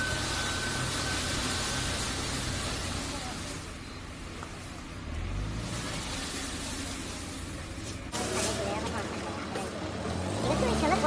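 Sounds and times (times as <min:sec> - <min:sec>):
people talking: 0:00.0 - 0:05.0, 0:06.1 - 0:11.0
truck engine running and revving: 0:00.0 - 0:11.0.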